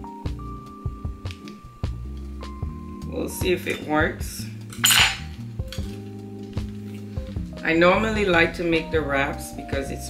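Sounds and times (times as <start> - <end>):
soft background music: 0.0 - 10.0
knife clinking on plate: 4.7 - 5.9.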